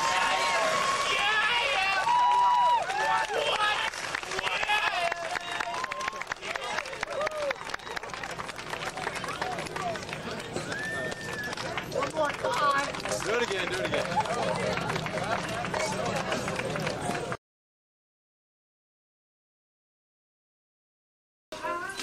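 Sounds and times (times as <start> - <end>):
crowd chatter: 2.9 - 17.4.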